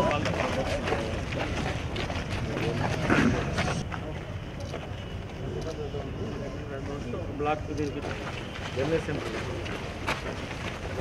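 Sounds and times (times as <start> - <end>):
people chattering outdoors: 0.0 - 11.0.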